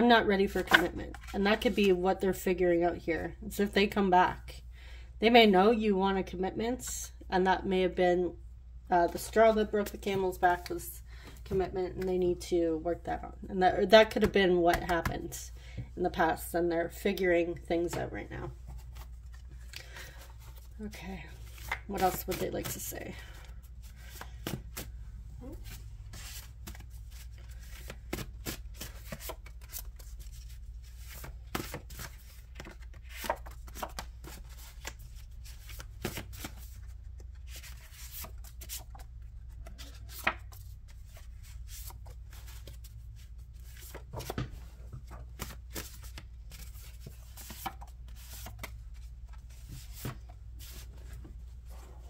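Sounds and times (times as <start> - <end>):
cards being shuffled: 21.3 - 22.9, 23.7 - 51.2.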